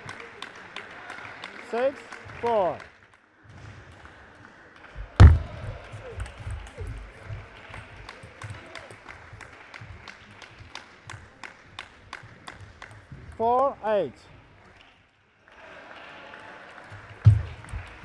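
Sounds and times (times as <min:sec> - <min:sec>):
sports hall hum: 0:00.0 - 0:18.0
loud thump: 0:05.0 - 0:07.1, 0:17.3 - 0:17.9.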